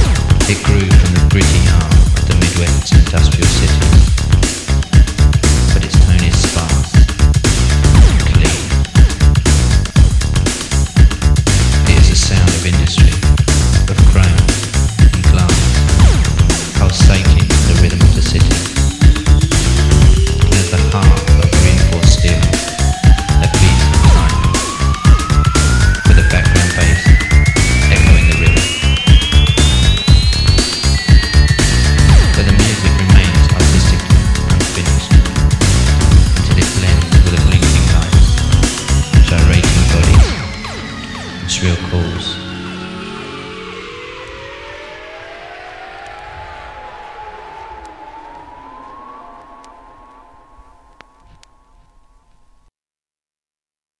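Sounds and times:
kick drum and bass: 0.0s - 41.3s
long tone rising in pitch: 14.2s - 52.7s
vinyl crackle clicks: 50.9s - 52.4s.

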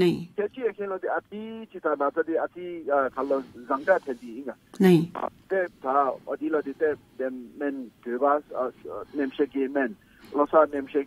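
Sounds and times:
person talking: 2.5s - 11.0s.

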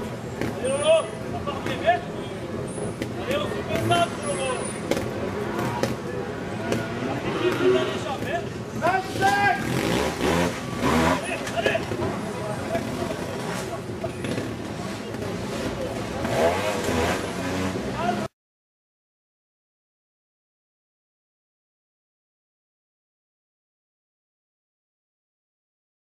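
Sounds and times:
people shouting and talking: 0.0s - 18.3s
motorcycle engine revving: 2.7s - 18.3s.

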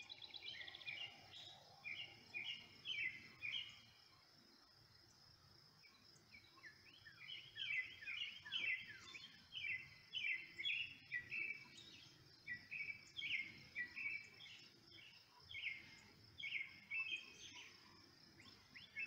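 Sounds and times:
small birds chirping: 0.0s - 19.0s.

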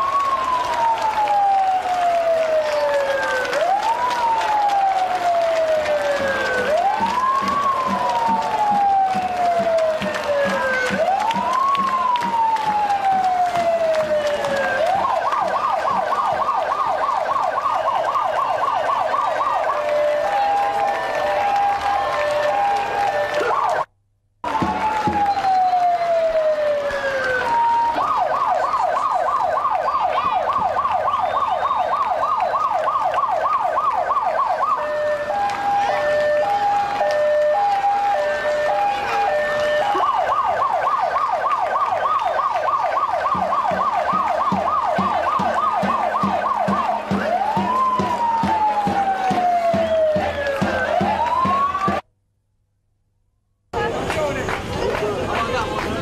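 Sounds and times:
emergency vehicle siren: 0.0s - 52.0s
street crowd noise: 0.0s - 52.0s, 53.7s - 56.0s.

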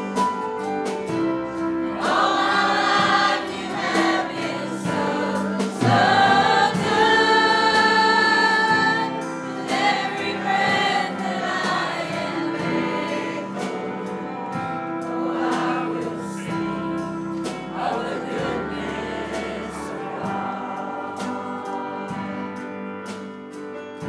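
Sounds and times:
acoustic guitar: 0.0s - 24.0s
church choir singing gospel: 0.0s - 24.0s
piano: 0.0s - 24.0s.

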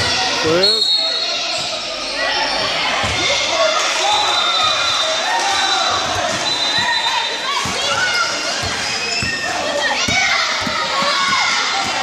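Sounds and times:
people shouting and chattering: 0.0s - 12.0s
basketball bouncing on gym floor: 7.5s - 12.0s.

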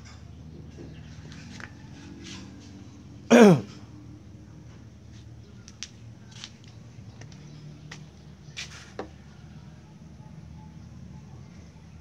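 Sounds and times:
loud vocal sound falling in pitch: 3.3s - 3.6s.

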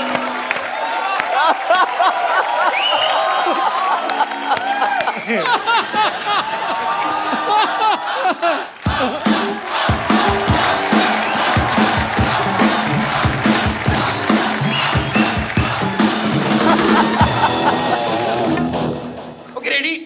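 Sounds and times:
shouted cheers: 0.0s - 18.7s
drum-heavy music: 8.9s - 19.6s.

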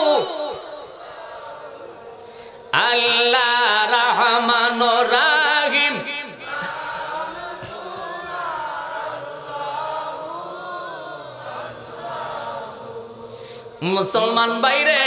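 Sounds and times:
man chanting through microphone: 2.6s - 8.8s, 13.6s - 15.0s.

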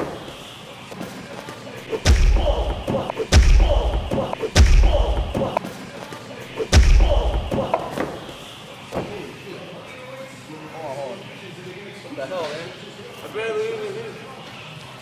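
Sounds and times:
heavy thuds with deep boom: 2.0s - 5.5s, 6.7s - 7.7s.

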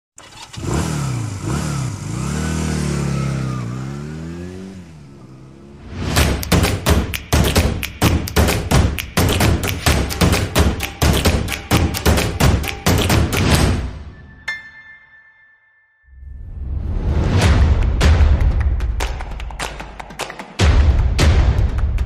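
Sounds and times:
motorcycle engine revving: 0.2s - 6.2s
music with fast drum beat: 6.2s - 13.8s, 17.6s - 22.0s.

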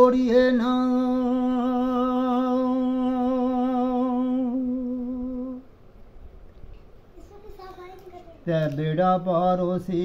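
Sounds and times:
man singing a long note: 0.0s - 5.7s.

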